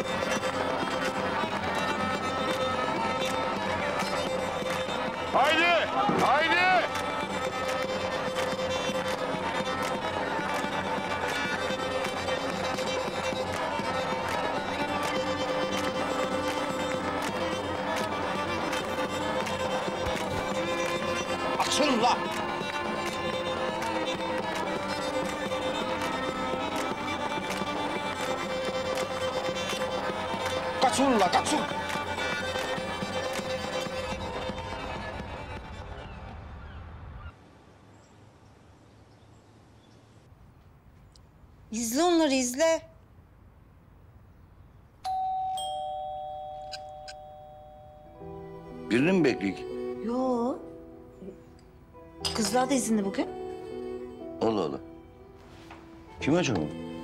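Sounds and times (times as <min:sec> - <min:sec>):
folk dance music on clarinets: 0:00.0 - 0:36.2.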